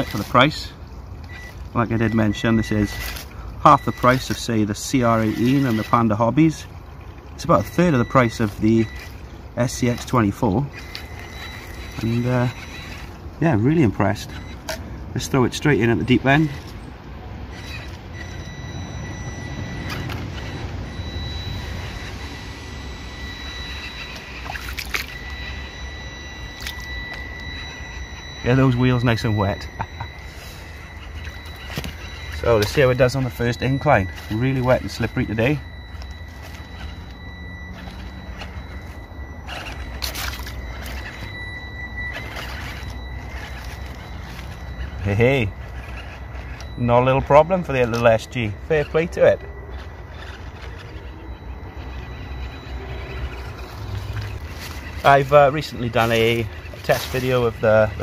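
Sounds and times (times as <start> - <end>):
running sloshing water: 0.0 - 58.0
small electric motor whining: 0.0 - 58.0
tyres scrabbling over leaves: 0.0 - 58.0.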